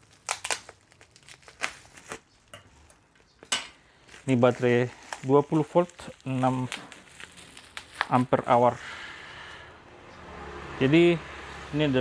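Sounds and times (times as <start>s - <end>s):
plastic bag crinkling: 0.0s - 8.8s.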